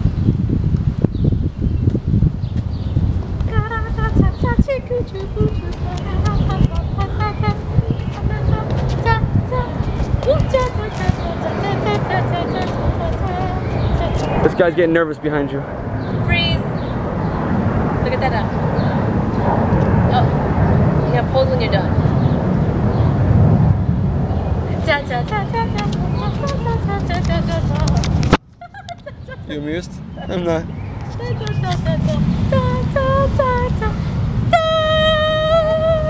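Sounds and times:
wind buffeting microphone: 0.0s - 36.0s
high wavering voice: 3.5s - 14.6s, 24.7s - 28.0s, 30.2s - 36.0s.

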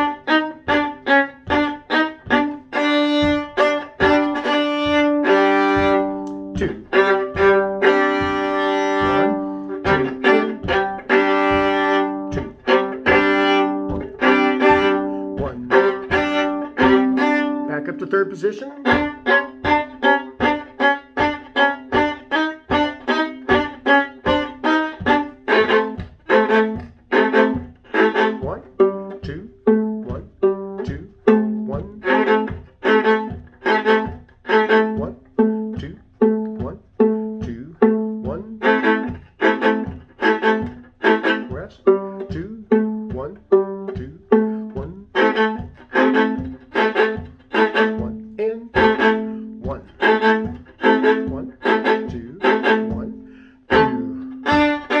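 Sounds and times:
viola short bowed notes: 0.0s - 55.0s.

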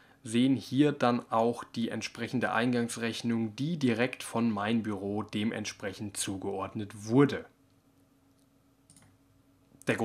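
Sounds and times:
computer mouse clicks: 7.7s - 9.2s.

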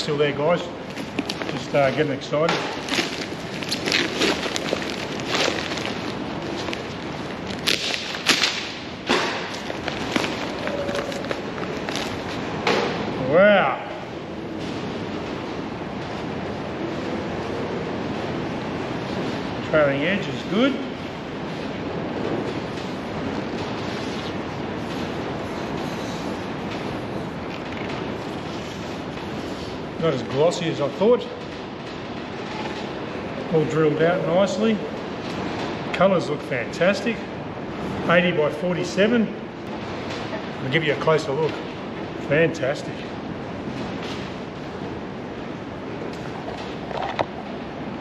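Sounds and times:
steady background hiss: 0.0s - 48.0s
newspaper tearing and crumpling: 2.8s - 8.7s, 9.4s - 12.4s.

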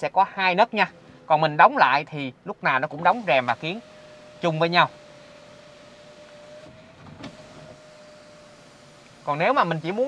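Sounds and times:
sunroof motor whining: 2.9s - 10.0s
sunroof click: 5.0s - 9.2s.

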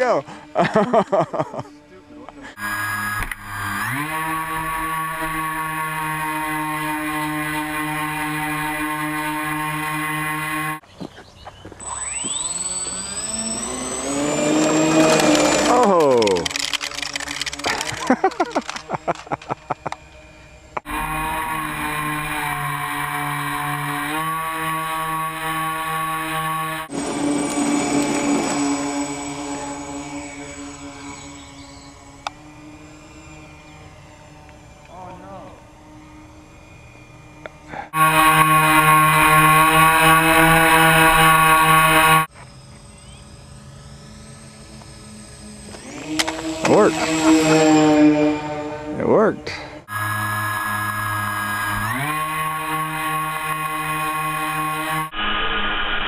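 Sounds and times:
model plane motor whining: 0.0s - 10.8s, 11.6s - 56.0s.

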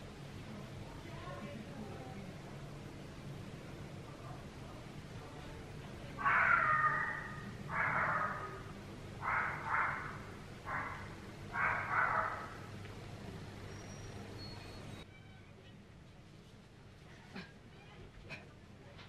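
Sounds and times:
bird calling loudly: 6.2s - 12.7s.

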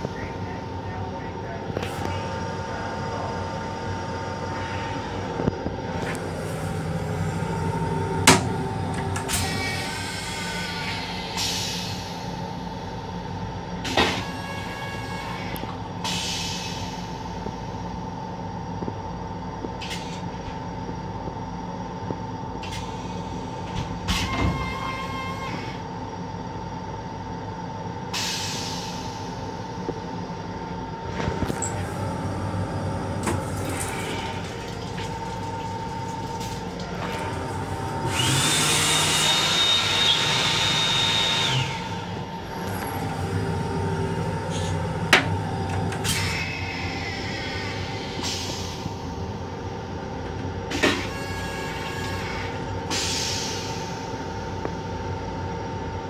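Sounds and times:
railcar hum with high whine: 0.0s - 56.0s.

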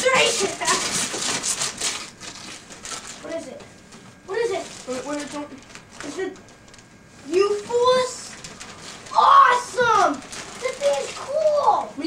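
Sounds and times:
people exclaiming: 9.1s - 10.2s.

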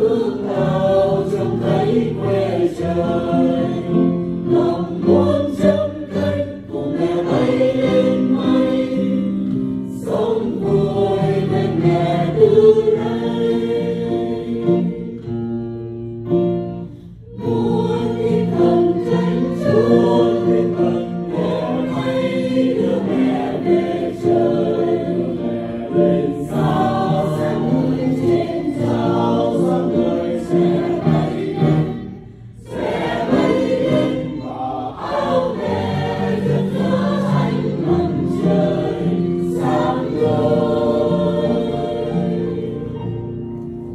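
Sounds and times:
mixed choir singing a hymn: 0.0s - 43.9s.

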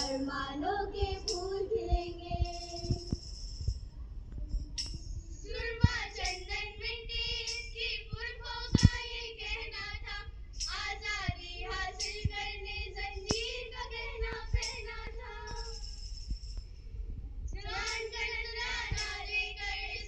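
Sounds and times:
girls singing in unison: 0.0s - 3.3s, 5.4s - 15.8s, 17.6s - 20.0s
tambourine taps: 0.0s - 16.7s, 17.5s - 20.0s.

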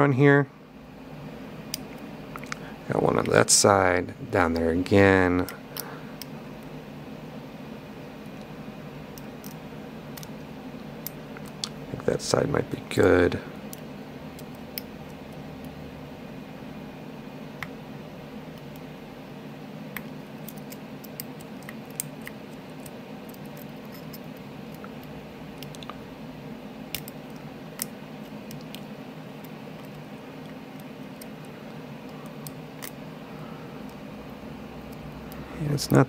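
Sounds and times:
steady low hum: 0.0s - 36.0s.

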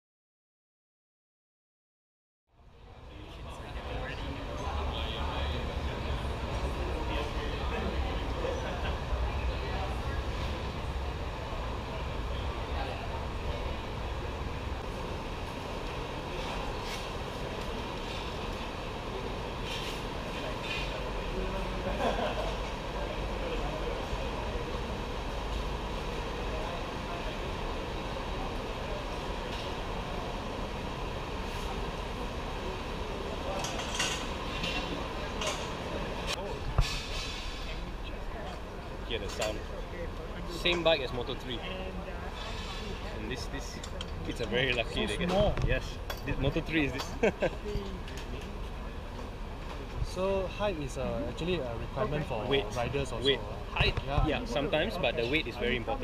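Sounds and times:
people talking: 2.7s - 56.0s.

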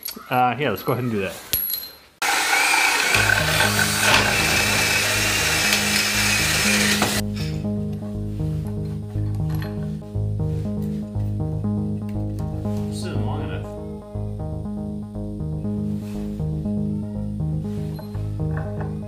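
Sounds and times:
power drill boring through wood: 2.2s - 7.2s
background music with bass line: 3.2s - 19.0s.

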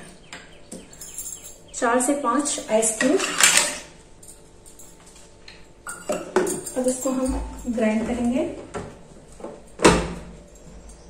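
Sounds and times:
ice cubes clattering on metal: 2.8s - 3.9s.

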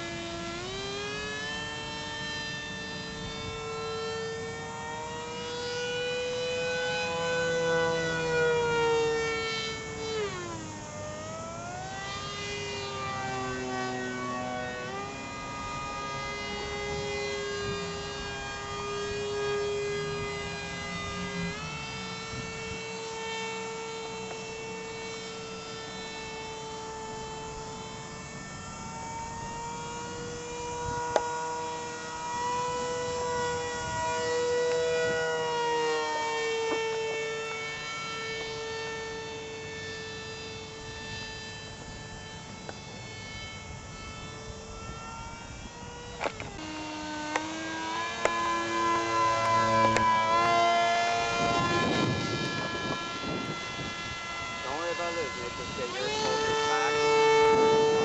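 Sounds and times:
model airplane motor whining: 0.0s - 58.0s.

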